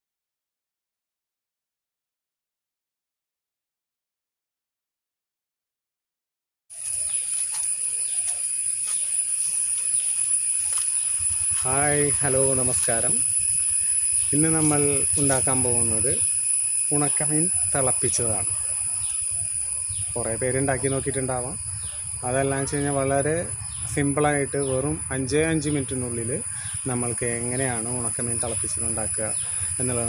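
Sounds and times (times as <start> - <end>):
insects droning: 6.7 - 30.0
high-pitched whine: 6.8 - 30.0
man talking: 11.6 - 13.3, 14.3 - 16.3, 16.9 - 18.6, 20.2 - 21.6, 22.2 - 30.0.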